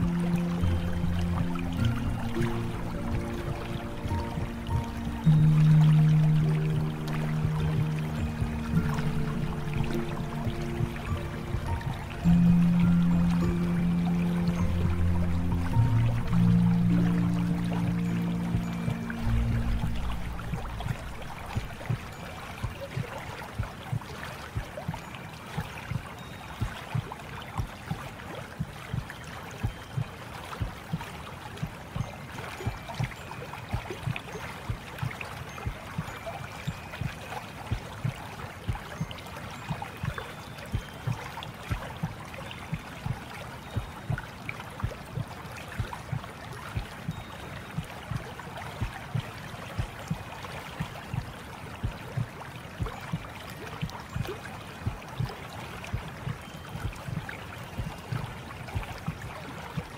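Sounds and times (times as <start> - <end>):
soft low splashes: 0.0 - 59.9
water flowing and gurgling: 0.0 - 59.9.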